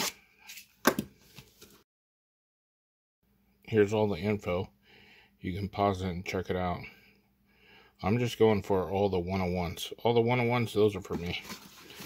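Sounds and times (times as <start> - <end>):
cardboard box rustling: 11.2 - 12.0.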